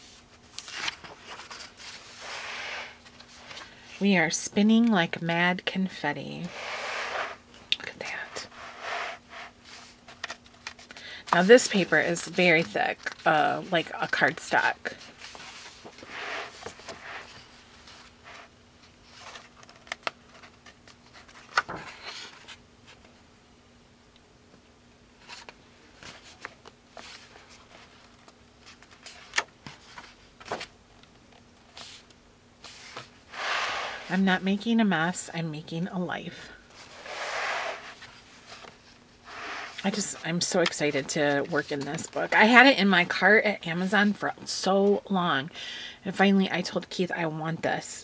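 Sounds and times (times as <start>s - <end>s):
thick pages turning: 0.1s - 3.8s
hand brushing over paper: 6.4s - 7.4s.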